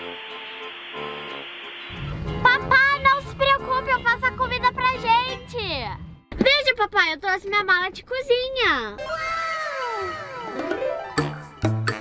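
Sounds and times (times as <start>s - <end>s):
comic gliding tone effect: 0.0s - 5.4s, 9.0s - 11.7s
rising tone: 0.0s - 5.4s, 9.0s - 11.8s.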